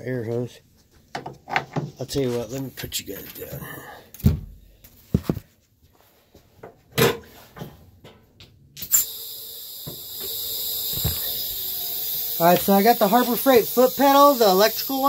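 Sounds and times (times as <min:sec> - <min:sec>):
compressed air hissing: 0:08.8 - 0:15.0.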